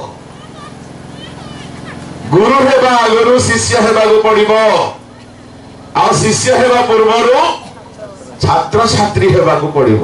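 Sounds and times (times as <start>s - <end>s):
man preaching into microphone: 2.3s - 5.0s, 6.0s - 7.6s, 8.4s - 10.0s.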